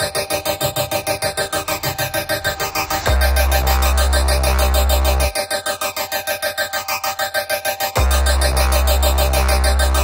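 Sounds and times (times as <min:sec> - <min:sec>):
pulsing synthesizer chord: 0:00.0 - 0:10.0.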